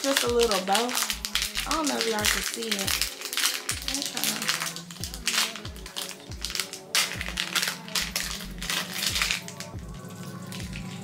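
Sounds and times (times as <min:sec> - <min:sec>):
plastic packaging crinkling: 0:00.0 - 0:11.0
hip-hop music with deep bass: 0:00.2 - 0:11.0.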